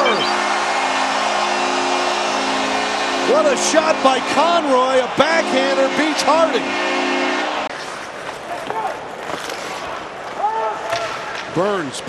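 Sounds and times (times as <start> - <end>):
crowd noise: 0.0 - 12.0
skates scraping on ice: 7.7 - 10.8.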